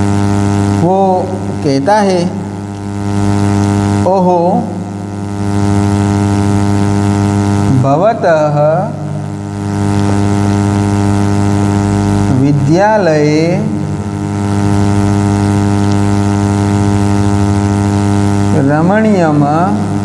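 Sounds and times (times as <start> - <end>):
loud electrical hum: 0.0 - 20.0
man speaking: 0.8 - 2.5, 4.0 - 4.8, 7.7 - 9.2, 12.3 - 13.9, 18.5 - 20.0.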